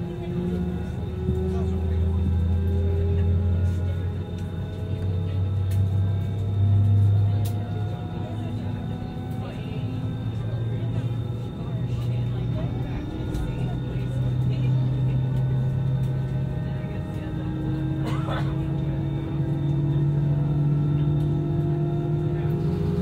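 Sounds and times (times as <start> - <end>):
jet engine drone with whine: 0.0 - 23.0.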